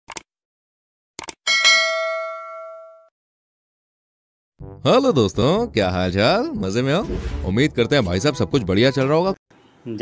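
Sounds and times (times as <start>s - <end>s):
bell ding: 1.5s - 3.1s.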